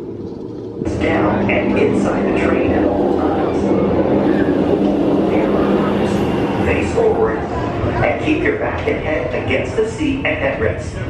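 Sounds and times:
roller coaster rumbling on track: 0:00.0 - 0:11.0.

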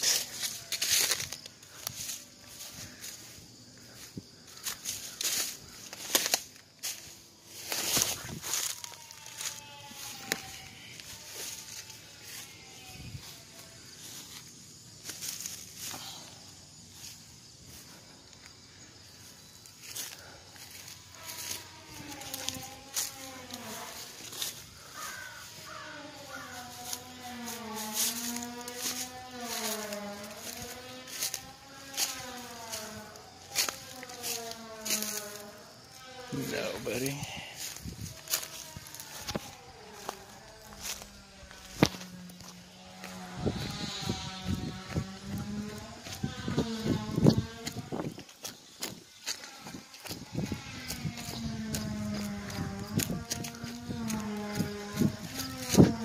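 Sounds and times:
footsteps through dry brush: 0:00.0 - 0:56.0.

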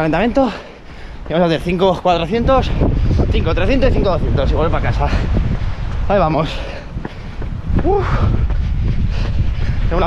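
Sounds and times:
strong wind buffeting microphone: 0:00.0 - 0:10.0.

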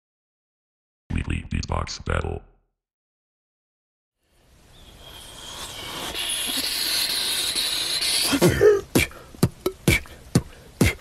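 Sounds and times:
loud bright steady hiss: 0:04.2 - 0:11.0.

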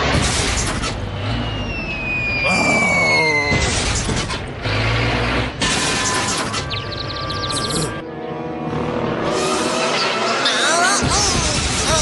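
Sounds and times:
cartoon descending whistle: 0:01.3 - 0:03.7.

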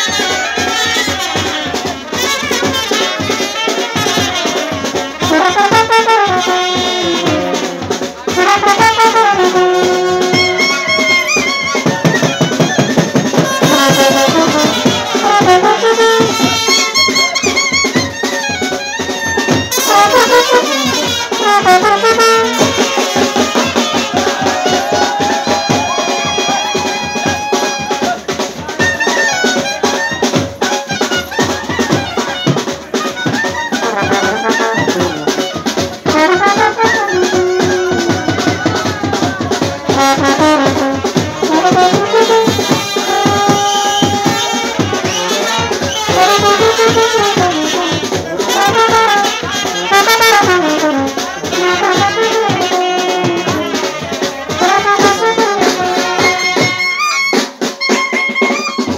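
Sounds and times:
brass horns playing melody: 0:00.0 - 0:58.9
clarinet: 0:00.0 - 0:58.9
steady drumming: 0:00.0 - 0:58.9.

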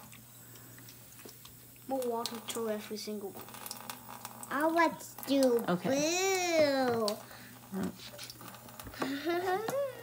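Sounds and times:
faucet trickling into steel sink: 0:00.0 - 0:10.0.

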